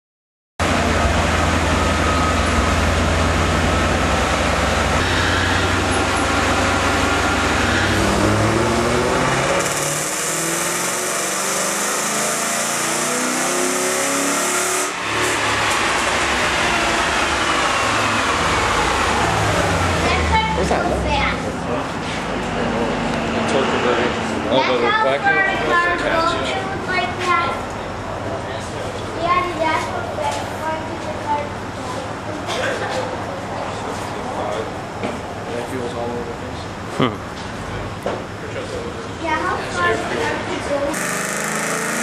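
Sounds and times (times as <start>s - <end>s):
car engine revving on dyno: 0.6s - 26.6s, 39.8s - 42.0s
dyno rollers whining: 0.6s - 32.4s, 38.5s - 42.0s.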